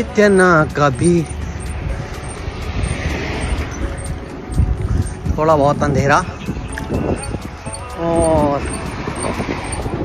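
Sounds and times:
bicycle road rumble: 0:00.0 - 0:10.0
faint music with ticking beat: 0:00.0 - 0:10.0
wind on microphone: 0:01.3 - 0:10.0.

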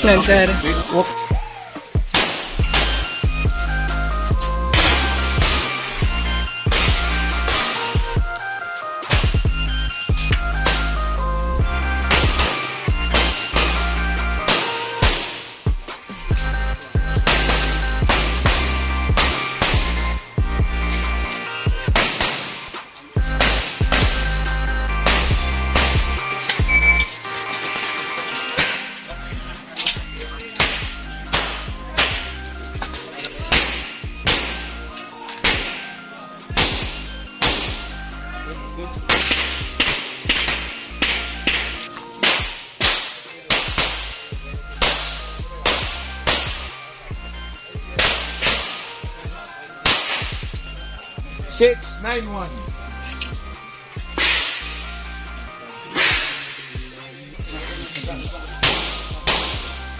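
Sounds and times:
background music with bass: 0:00.0 - 0:59.9
handgun shots: 0:02.1 - 0:03.1, 0:09.0 - 0:09.5, 0:14.5 - 0:15.5, 0:17.3 - 0:20.0, 0:21.9 - 0:24.3, 0:25.0 - 0:26.6, 0:30.6 - 0:32.4, 0:33.5 - 0:34.6, 0:35.4 - 0:36.0, 0:36.6 - 0:37.9, 0:39.1 - 0:44.1, 0:44.8 - 0:46.8, 0:48.0 - 0:48.9, 0:49.8 - 0:50.5, 0:58.6 - 0:59.7.

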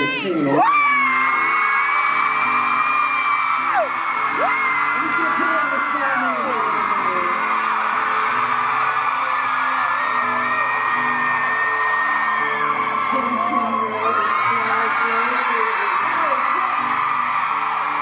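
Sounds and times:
audience whooping and screaming: 0:00.0 - 0:18.0.

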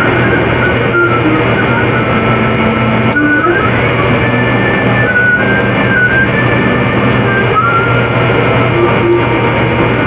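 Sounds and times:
whistle-like tones: 0:00.0 - 0:09.6
harsh noise: 0:00.0 - 0:10.0
steady low hum: 0:00.0 - 0:10.0.

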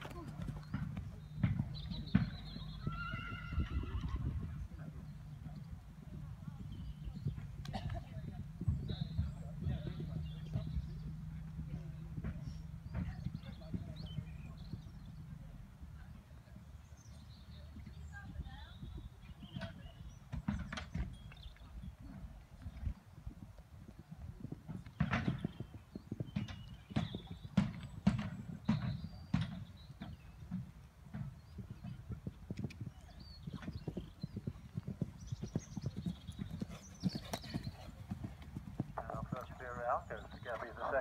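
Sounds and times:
horse hooves thudding on sand: 0:00.0 - 0:02.9, 0:17.7 - 0:41.0
man announcing: 0:39.0 - 0:41.0.

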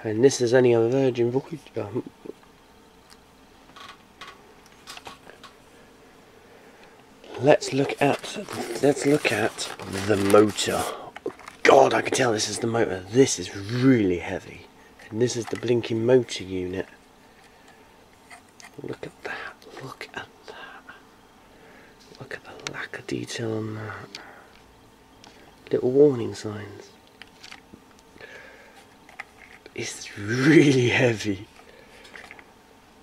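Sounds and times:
handling clicks and rustles: 0:07.2 - 0:12.8, 0:15.0 - 0:16.1, 0:27.0 - 0:28.1, 0:28.8 - 0:29.8.

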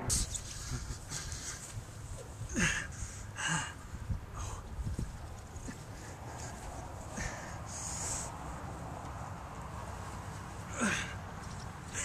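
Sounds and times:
wind rumble on microphone: 0:00.0 - 0:10.2
breathy bursts: 0:02.5 - 0:04.7, 0:05.7 - 0:08.4, 0:10.6 - 0:11.2.

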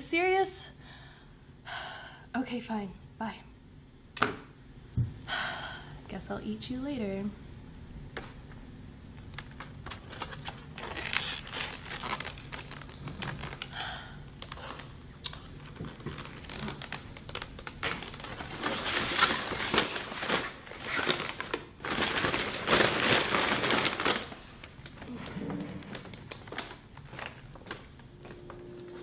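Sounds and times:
foam takeout packaging crinkling: 0:09.2 - 0:28.0.

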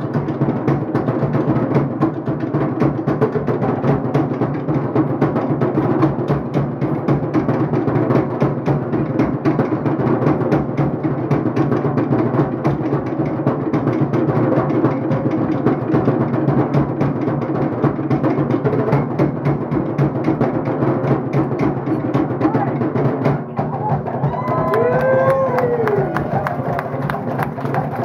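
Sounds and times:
loud fast drum music: 0:00.0 - 0:28.0.

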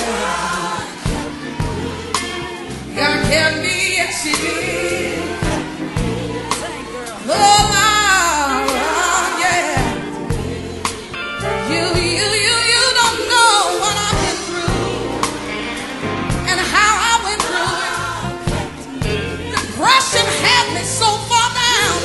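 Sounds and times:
band with bass and drums: 0:00.0 - 0:22.0
gospel voices singing: 0:00.0 - 0:22.0.

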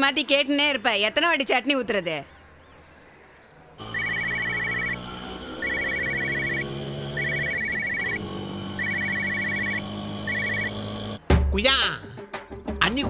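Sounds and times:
sustained synthesised tones: 0:03.8 - 0:11.2
mobile phone ringing: 0:03.9 - 0:05.0, 0:05.6 - 0:06.6, 0:07.2 - 0:08.2, 0:08.8 - 0:10.8.

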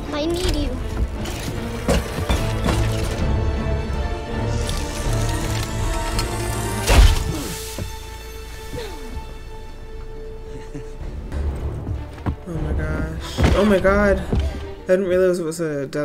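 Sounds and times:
tense music: 0:00.0 - 0:16.0
knocks and crashes: 0:00.4 - 0:03.3.

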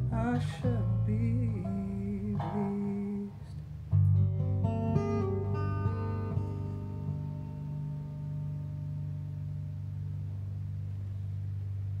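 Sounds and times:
guitar chord ringing out: 0:04.1 - 0:12.0.

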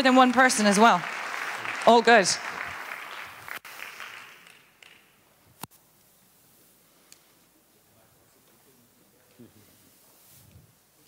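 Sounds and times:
audience applause: 0:00.0 - 0:05.1.

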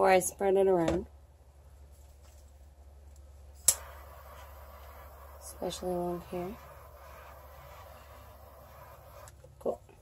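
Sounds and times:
torch ignition click: 0:03.6 - 0:05.9
torch flame hissing: 0:03.6 - 0:09.4.

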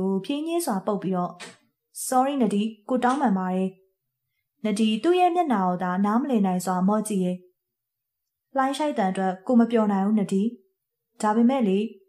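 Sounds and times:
person narrating: 0:00.0 - 0:03.7, 0:04.6 - 0:07.4, 0:11.2 - 0:12.0.

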